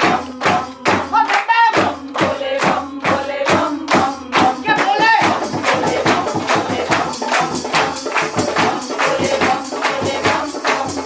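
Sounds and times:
congregation clapping in rhythm: 0:00.0 - 0:11.0
live devotional music: 0:00.0 - 0:11.0.

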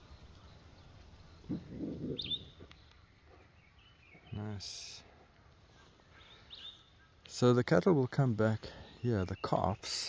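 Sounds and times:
faint distant bird calls: 0:00.0 - 0:10.0
low outdoor hush: 0:00.0 - 0:10.0.

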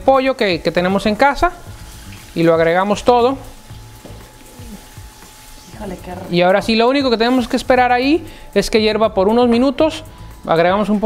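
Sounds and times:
low sizzling in a pan: 0:00.0 - 0:11.0.

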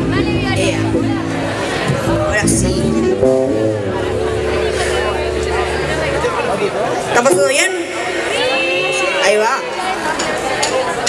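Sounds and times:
live band sustained chord: 0:00.0 - 0:10.0
people's voices: 0:00.0 - 0:11.0.

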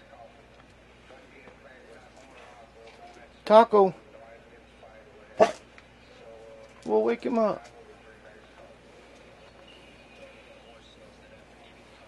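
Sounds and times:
dog barking: 0:05.4 - 0:05.6.

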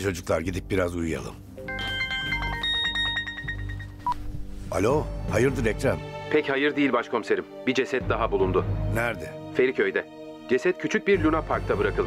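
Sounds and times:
mobile phone ringtone: 0:01.6 - 0:04.3.

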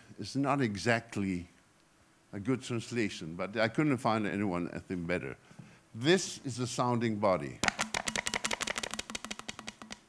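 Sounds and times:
plastic bottle crackling: 0:07.6 - 0:10.0.

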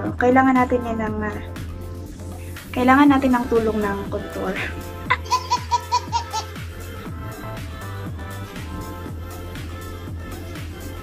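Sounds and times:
background music with steady beat: 0:00.0 - 0:11.0
woman laughing: 0:04.6 - 0:06.6.

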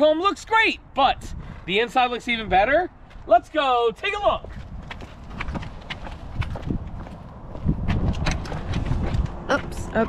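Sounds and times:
footsteps on asphalt: 0:01.3 - 0:10.0.

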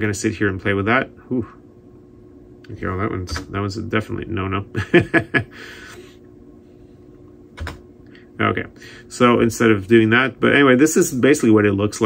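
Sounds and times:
faint steady hum: 0:00.0 - 0:12.0
computer keyboard keystrokes: 0:07.6 - 0:07.8.

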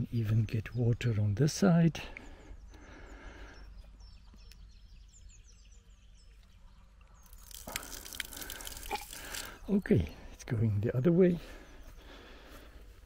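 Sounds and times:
water splashing down: 0:07.3 - 0:09.6
water gushing from a pipe valve: 0:07.3 - 0:09.7.

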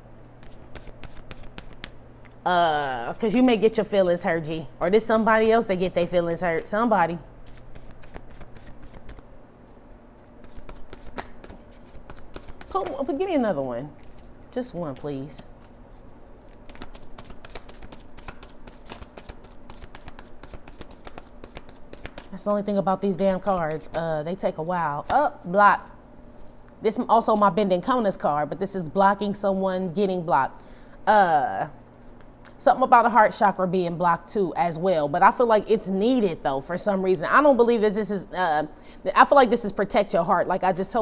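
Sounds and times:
cards being shuffled: 0:00.4 - 0:02.4, 0:07.4 - 0:09.3, 0:10.2 - 0:13.2, 0:15.0 - 0:22.4.

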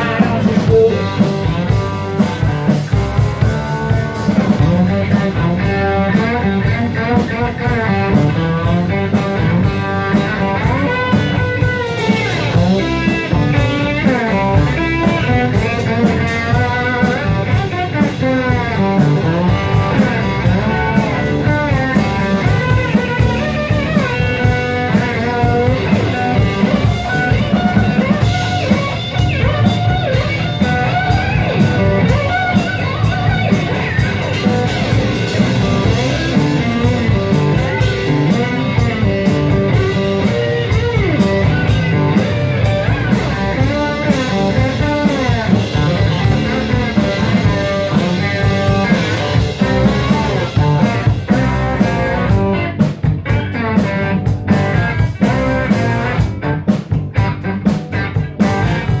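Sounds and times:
blues band playing: 0:00.0 - 0:59.0
electric guitar bending notes: 0:00.0 - 0:59.0.

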